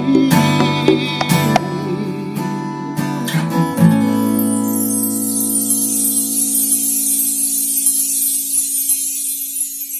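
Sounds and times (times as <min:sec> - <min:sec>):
acoustic guitar playing: 0:00.0 - 0:09.9.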